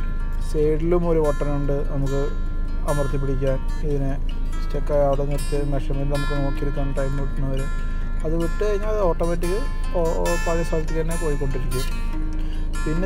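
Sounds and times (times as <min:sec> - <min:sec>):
background music: 0:00.0 - 0:13.0
person talking: 0:00.4 - 0:12.0.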